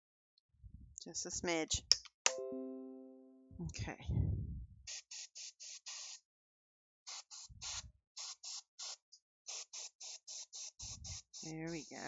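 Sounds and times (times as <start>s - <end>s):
airbrush spraying hiss: 4.9s - 6.2s, 7.1s - 12.0s.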